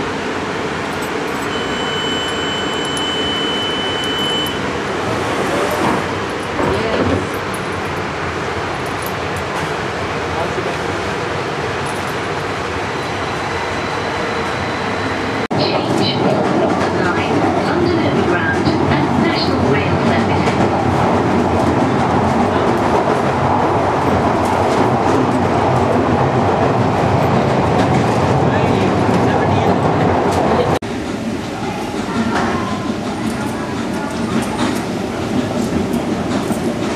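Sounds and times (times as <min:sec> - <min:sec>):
train wheels rumbling and rattling: 0:02.2 - 0:13.0, 0:15.4 - 0:36.9.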